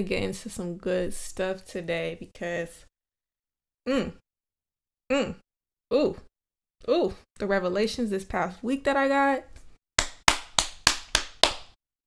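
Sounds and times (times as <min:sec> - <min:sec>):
person clapping hands: 0:10.0 - 0:11.8.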